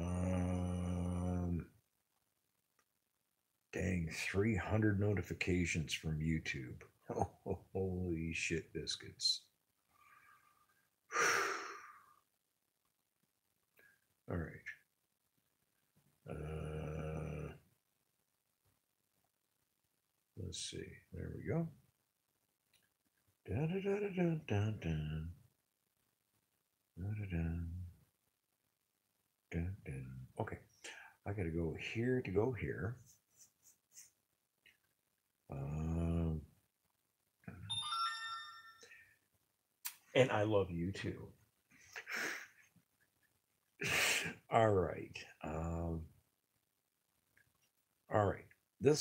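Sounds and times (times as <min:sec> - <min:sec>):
man saying uhh: 0:00.0 - 0:01.6, 0:16.3 - 0:17.6, 0:23.5 - 0:25.3, 0:27.0 - 0:27.9, 0:35.5 - 0:36.4, 0:43.8 - 0:46.0
phone alert chime: 0:37.7 - 0:39.0.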